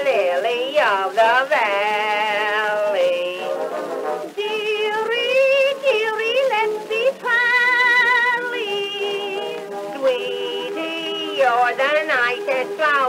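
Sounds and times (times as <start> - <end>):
small orchestra on old recording: 0.0 - 13.0.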